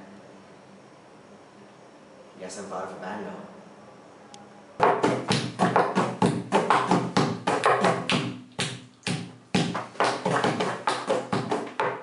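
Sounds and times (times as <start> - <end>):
rhythmic tapped percussion: 4.8 - 12.0.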